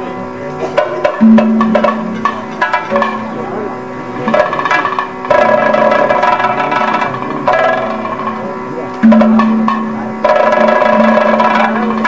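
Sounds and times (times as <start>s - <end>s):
steady drone: 0.0s - 12.0s
metallic gong and cymbal strikes: 1.0s - 12.0s.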